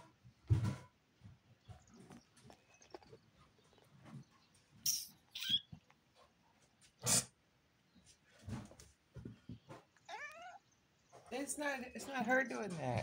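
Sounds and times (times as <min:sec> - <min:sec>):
cat hissing: 0:07.0 - 0:07.4.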